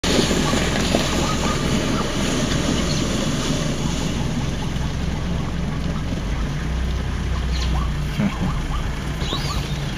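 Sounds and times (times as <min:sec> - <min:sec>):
low engine hum: 0:00.0 - 0:09.9
zebra hoofbeats galloping: 0:00.0 - 0:09.9.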